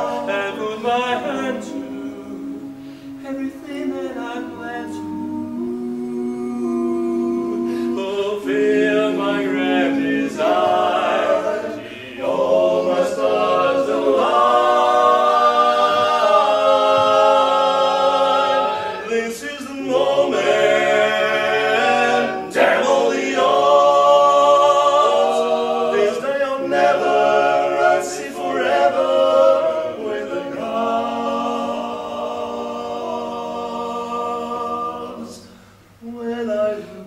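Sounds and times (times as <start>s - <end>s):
male quartet singing a cappella: 0.0s - 37.0s.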